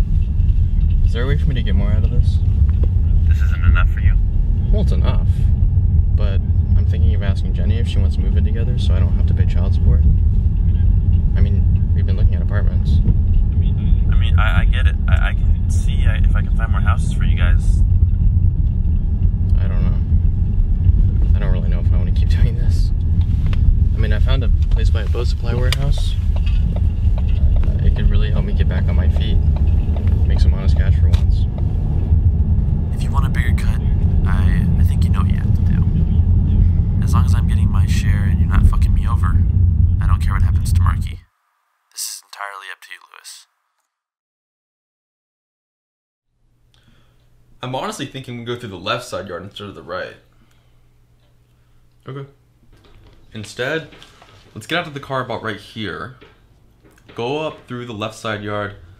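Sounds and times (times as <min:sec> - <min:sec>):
car interior rumble: 0:00.0 - 0:41.2.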